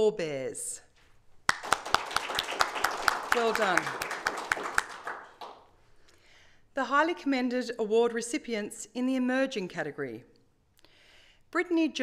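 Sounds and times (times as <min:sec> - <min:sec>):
hands clapping in applause: 0:01.5 - 0:05.8.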